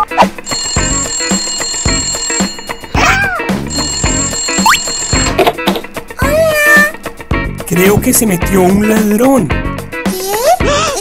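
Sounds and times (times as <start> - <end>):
background music: 0.0 - 11.0
telephone ringing: 0.4 - 5.9.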